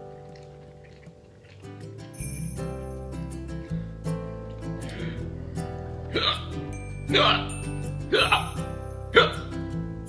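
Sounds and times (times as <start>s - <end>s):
background music: 0.0s - 10.0s
man gasping: 4.8s - 6.6s.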